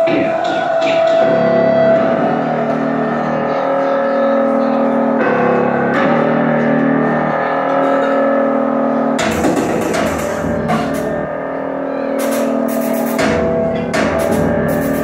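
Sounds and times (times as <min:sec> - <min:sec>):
distorted electric guitar drone: 0:00.0 - 0:15.0.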